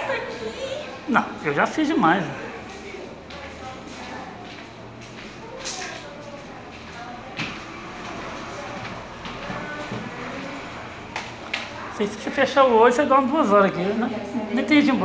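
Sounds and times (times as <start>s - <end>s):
faint indistinct voices: 0.0s - 15.0s.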